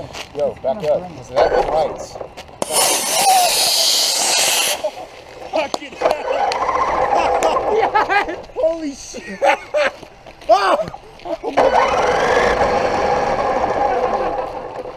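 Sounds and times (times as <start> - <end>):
rocket motor rushing hiss: 2.6 - 5.0
excited shouting and talk: 10.3 - 11.7.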